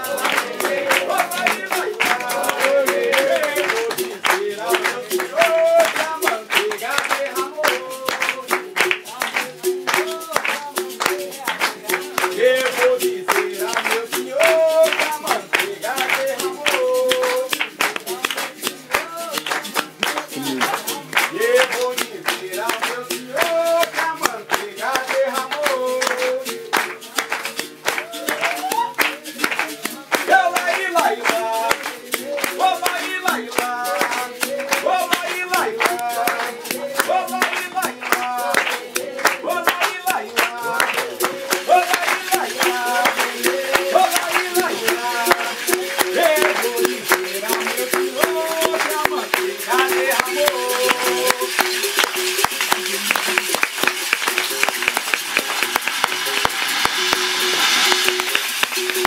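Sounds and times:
person singing wordless melody: 0.0s - 53.4s
rhythmic hand-clapping: 0.0s - 59.0s.

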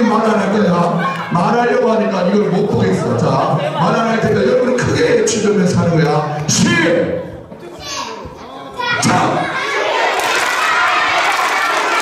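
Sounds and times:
man's amplified voice: 0.0s - 7.5s, 8.8s - 9.6s
children chattering and calling out: 0.7s - 1.4s, 7.5s - 11.2s.

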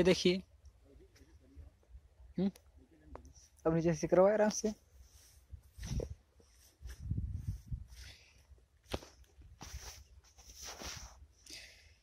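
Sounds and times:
footsteps rustling through wheat: 5.0s - 11.2s.

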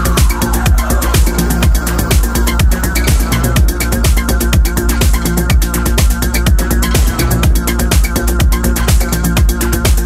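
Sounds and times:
deep held bass: 0.0s - 10.0s
fast ticking hi-hats: 0.0s - 10.0s
kick drum: 0.0s - 10.0s
sustained synth chords: 0.0s - 10.0s.

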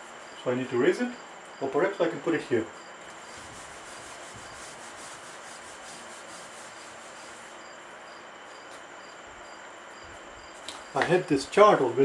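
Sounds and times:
faint crickets chirping: 0.0s - 12.0s
whiteboard eraser rubbing: 3.1s - 7.8s.

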